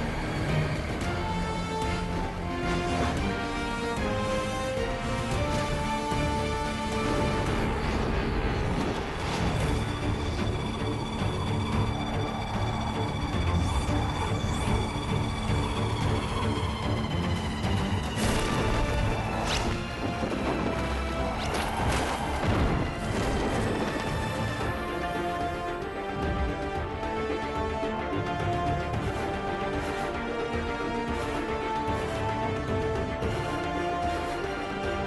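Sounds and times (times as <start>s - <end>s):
dramatic soundtrack music: 0.0s - 35.0s.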